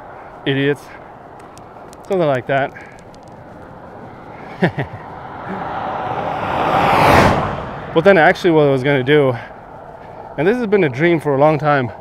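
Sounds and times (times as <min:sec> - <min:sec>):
vehicle tyre and engine noise: 0:00.0 - 0:12.0.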